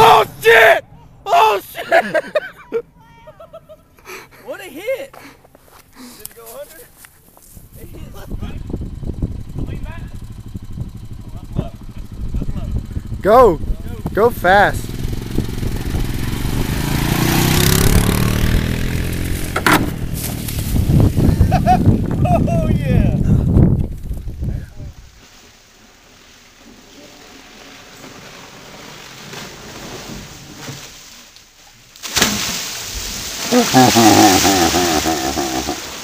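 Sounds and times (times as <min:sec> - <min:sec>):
people shouting: 0:00.0 - 0:02.0
atv engine running: 0:07.7 - 0:24.4, 0:33.4 - 0:36.0
splashing water: 0:32.0 - 0:36.0.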